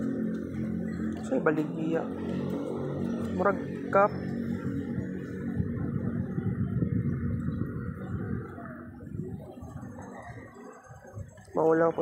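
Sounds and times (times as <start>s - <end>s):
faint music: 0.0s - 12.0s
murmur of voices: 0.0s - 12.0s.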